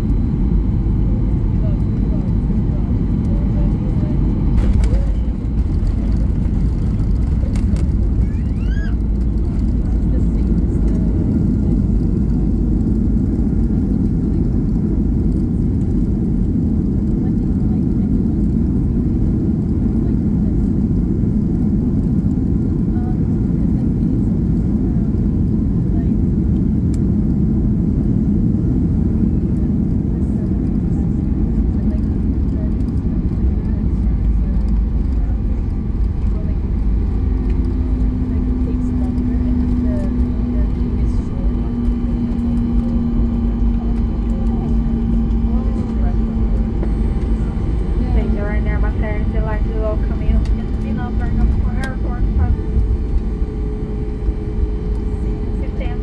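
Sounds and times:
low rumble of engines and wheels: 0.0 - 56.0.

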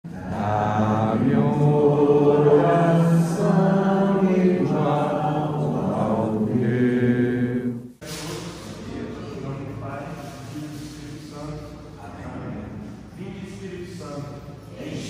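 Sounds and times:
chant-like singing: 0.1 - 8.0.

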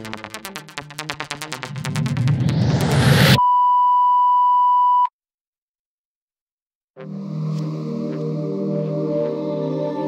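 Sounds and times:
electronic dance music: 0.0 - 3.4
rising synth noise sweep: 0.0 - 3.4
steady synth tone: 0.0 - 3.4.

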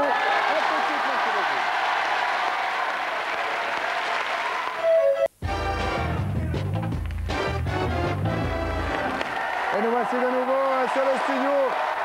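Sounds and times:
studio audience applauding: 0.0 - 4.9, 8.6 - 12.0
music with strong bass line: 5.4 - 9.0.

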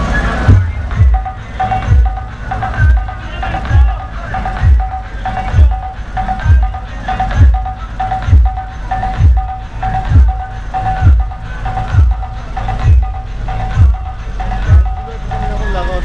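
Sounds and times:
loud dance music: 0.4 - 15.3
deep kick drum thump: 0.5 - 1.2.

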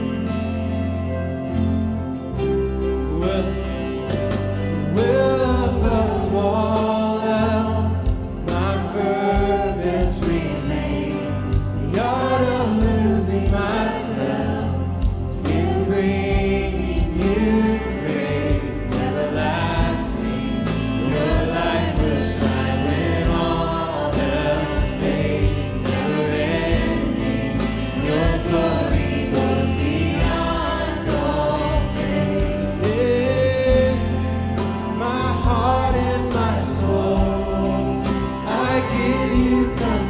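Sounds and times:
worship band playing: 0.0 - 40.0
singers with backing vocals: 3.1 - 40.0
drums with steady beat: 4.1 - 40.0.

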